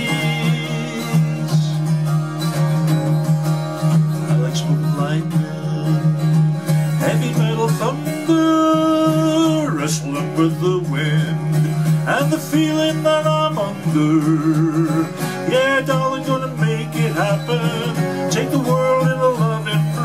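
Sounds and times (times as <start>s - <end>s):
man singing: 0.0s - 2.3s, 4.2s - 20.0s
acoustic guitar strummed: 0.0s - 20.0s.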